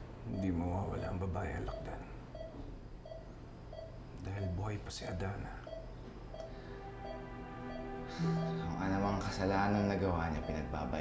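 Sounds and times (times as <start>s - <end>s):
low steady hum: 0.0s - 11.0s
patient monitor beeping: 0.3s - 11.0s.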